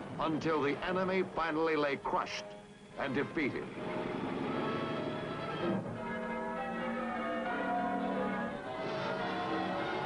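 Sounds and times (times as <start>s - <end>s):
bells pealing: 2.8s - 10.0s.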